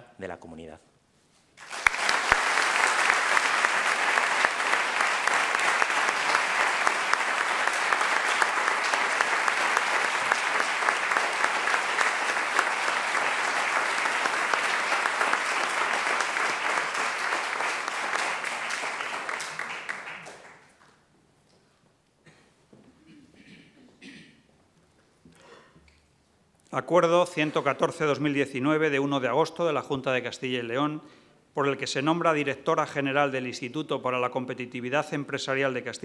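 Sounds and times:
group of people applauding: 0:01.6 - 0:21.0.

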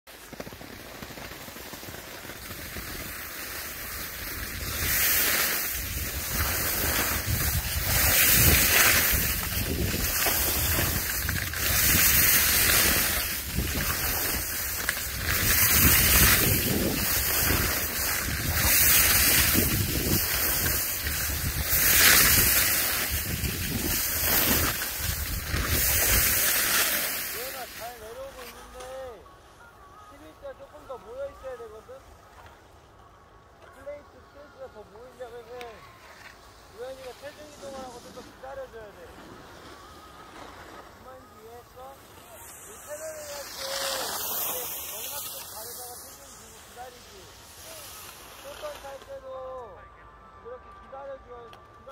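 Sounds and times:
skis scraping over packed snow: 0:00.1 - 0:32.8, 0:33.7 - 0:49.8
wind rumbling on microphone: 0:03.7 - 0:26.7.

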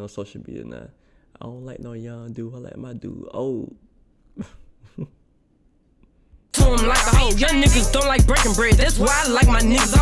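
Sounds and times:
man chuckling: 0:04.3 - 0:05.4.

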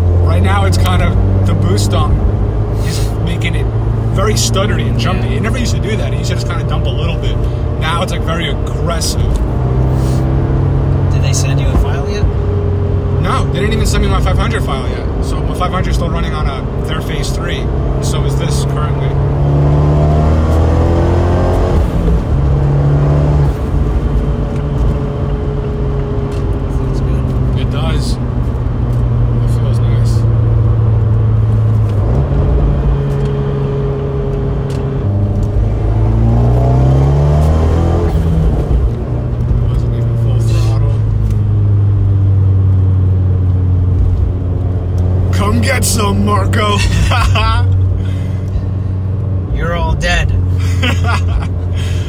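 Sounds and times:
car engine accelerating: 0:00.0 - 0:52.0.

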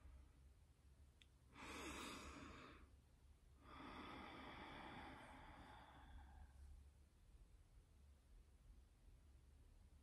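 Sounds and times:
breathy exhale: 0:01.6 - 0:02.9, 0:03.6 - 0:06.6.

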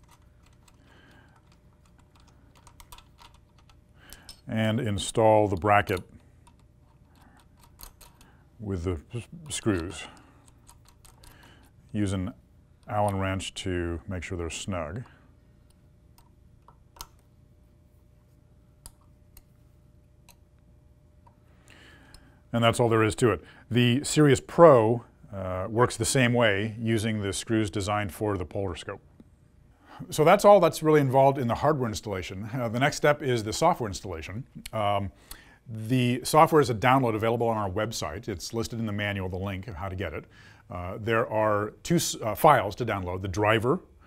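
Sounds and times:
small screws clicking: 0:00.0 - 0:04.4, 0:05.6 - 0:08.3.

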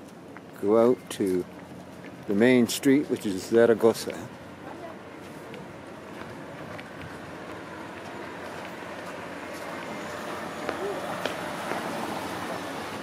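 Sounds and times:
traffic hum: 0:00.0 - 0:13.0.

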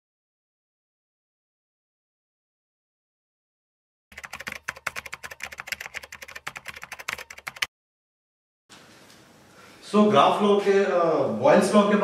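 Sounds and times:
keyboard typing clicks: 0:04.1 - 0:07.7.

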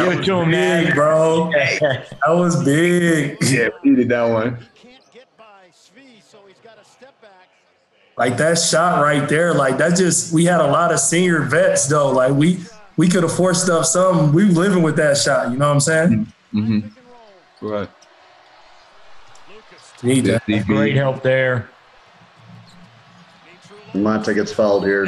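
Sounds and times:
faint speech: 0:00.0 - 0:07.5, 0:08.2 - 0:17.9, 0:19.5 - 0:21.7, 0:23.4 - 0:25.0.

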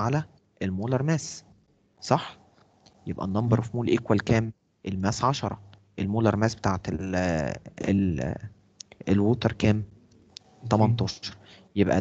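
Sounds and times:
man speaking: 0:00.0 - 0:01.4, 0:02.0 - 0:02.4, 0:03.0 - 0:12.0.

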